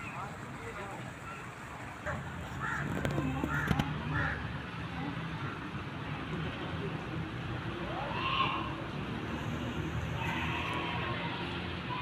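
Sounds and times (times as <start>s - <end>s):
harsh caw-like bird calls: 2.6s - 2.9s.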